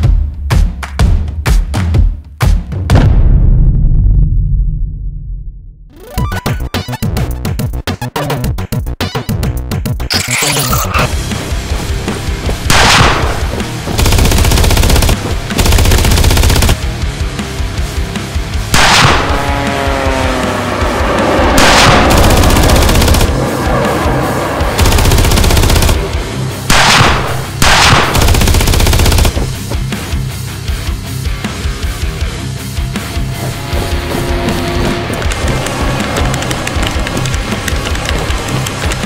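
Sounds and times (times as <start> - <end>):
music: 0.0 - 4.3, 5.9 - 39.0
video game automatic gunfire: 12.6 - 16.9, 21.6 - 23.4, 24.8 - 29.7.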